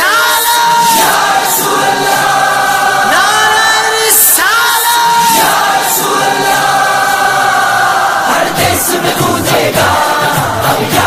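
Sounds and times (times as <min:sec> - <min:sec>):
chorus singing long held notes: 0:00.0 - 0:11.0
light regular beat: 0:08.4 - 0:11.0.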